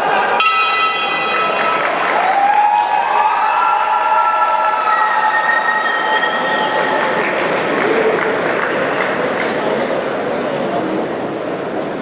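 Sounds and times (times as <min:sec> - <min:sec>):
crowd shouting and applauding: 0:00.0 - 0:10.0
boxing ring bell: 0:00.4 - 0:02.2.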